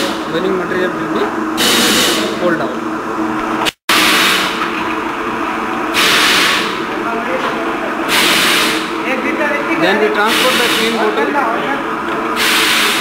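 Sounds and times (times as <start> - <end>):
bottling machinery hum: 0.0 - 13.0
compressed air hissing blasts: 1.6 - 2.4, 3.7 - 4.6, 5.9 - 6.8, 8.1 - 9.0, 10.3 - 11.0, 12.4 - 13.0.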